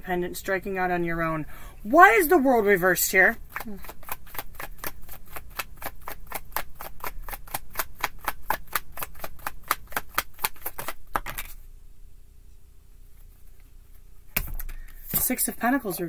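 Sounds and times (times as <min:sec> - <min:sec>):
cards being shuffled: 0:03.4 - 0:11.6.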